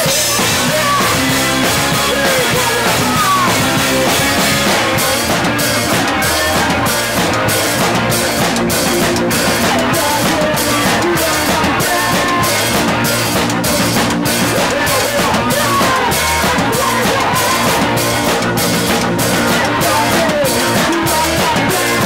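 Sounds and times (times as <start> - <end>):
live punk rock band: 0.0 - 22.0.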